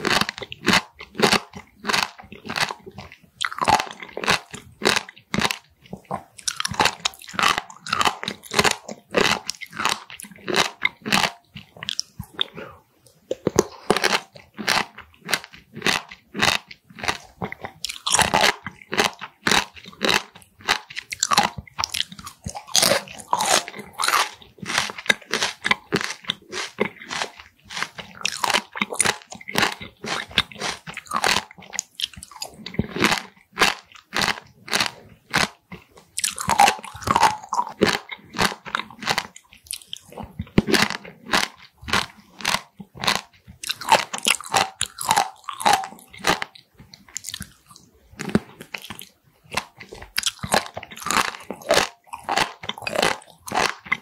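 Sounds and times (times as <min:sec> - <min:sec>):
wet crunchy chewing: 0:00.0 - 0:54.0.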